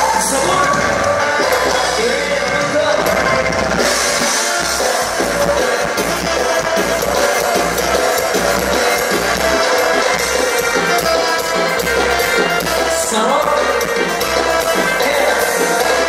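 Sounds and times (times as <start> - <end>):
drum kit steady beat: 0.0 - 16.0
live band playing dance music: 0.0 - 16.0.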